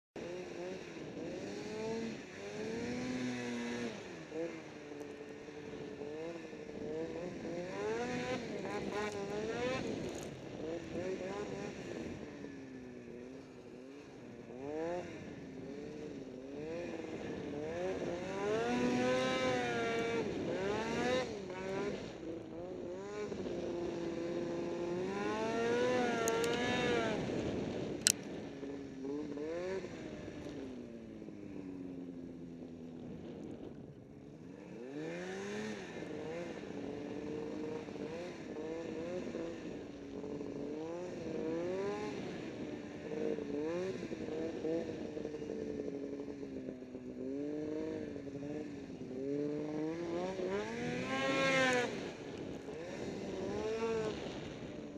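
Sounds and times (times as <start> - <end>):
snowmobile engine revving: 0.2 - 33.6, 34.4 - 54.9.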